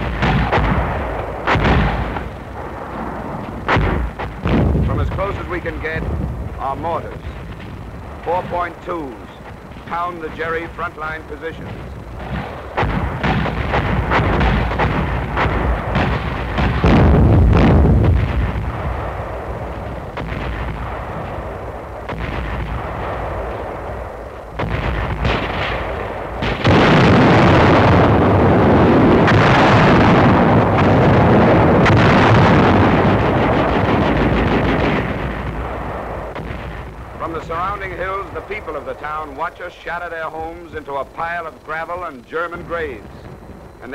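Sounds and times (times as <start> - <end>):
mortar fire and shell bursts: 0.0 - 43.9
rumble of artillery barrage: 0.0 - 43.9.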